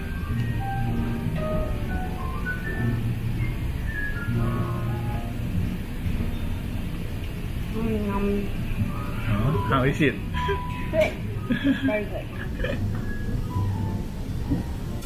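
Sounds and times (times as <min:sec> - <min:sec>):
slow melody of held notes: 0:00.0 - 0:11.8.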